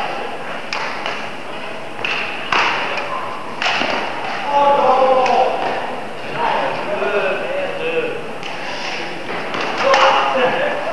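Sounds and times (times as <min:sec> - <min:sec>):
racket hitting shuttlecock in hall: 0:00.0 - 0:06.9, 0:08.3 - 0:10.9.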